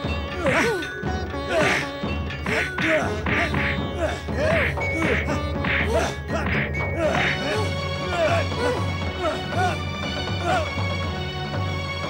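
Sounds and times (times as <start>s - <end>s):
rhythmic beat: 0.0s - 11.0s
steady held notes: 0.0s - 11.5s.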